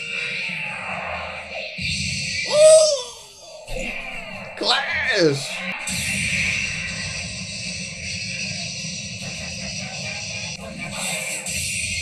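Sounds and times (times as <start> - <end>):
falling vocal cry: 2.5 - 3.3.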